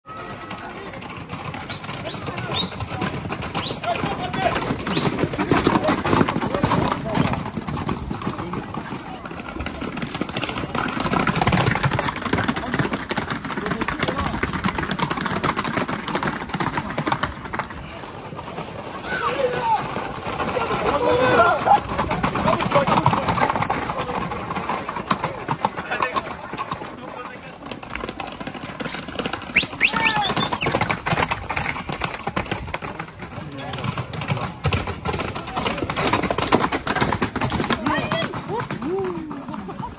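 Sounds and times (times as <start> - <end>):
onlookers' voices: 0.0 - 39.9
hooves clattering on asphalt: 0.1 - 39.9
people shouting: 19.0 - 22.0, 29.7 - 30.6
short high whistles: 29.5 - 30.8.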